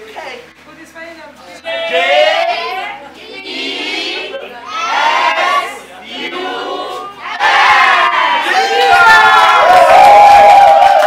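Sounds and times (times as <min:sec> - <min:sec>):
children shouting and cheering: 0:04.6 - 0:05.8, 0:07.2 - 0:11.0.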